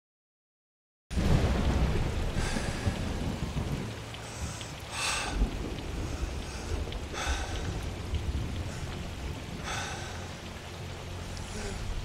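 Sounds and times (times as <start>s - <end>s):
deep rumble of thunder: 1.1s - 12.0s
heavy rain: 1.1s - 12.0s.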